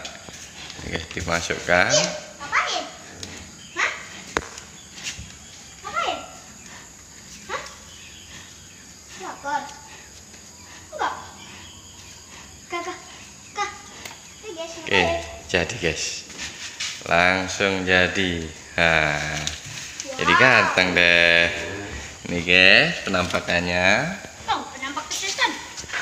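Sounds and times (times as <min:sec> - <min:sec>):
children talking and calling: 0:00.0 - 0:15.5, 0:16.3 - 0:23.4, 0:24.3 - 0:26.0.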